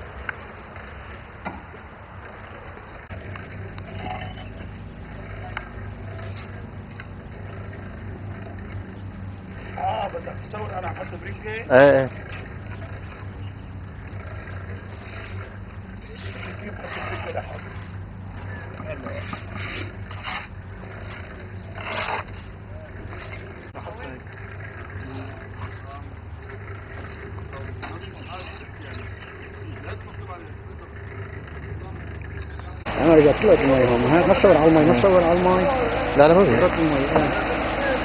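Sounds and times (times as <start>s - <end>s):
steady low hum: 0.0s - 38.0s
loud close speech: 27.4s - 38.0s.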